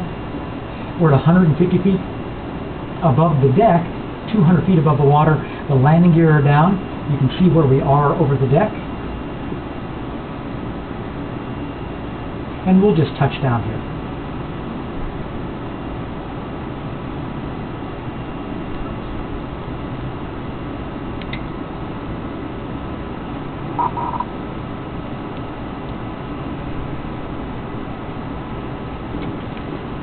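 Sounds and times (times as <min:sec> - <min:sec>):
steady rumbling: 0:00.0 - 0:11.5
faint hum: 0:00.0 - 0:30.0.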